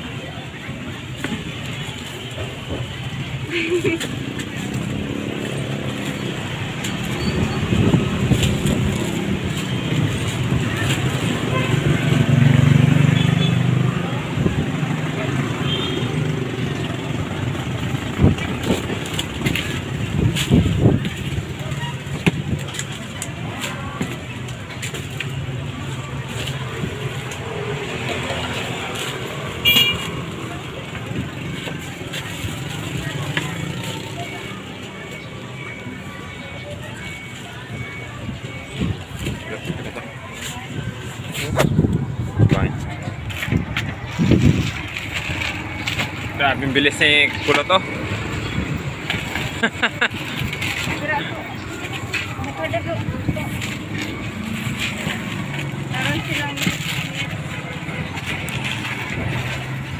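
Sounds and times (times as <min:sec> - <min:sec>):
faint voices: 0:00.0 - 0:59.9
vehicle engine rumbling: 0:00.0 - 0:59.9.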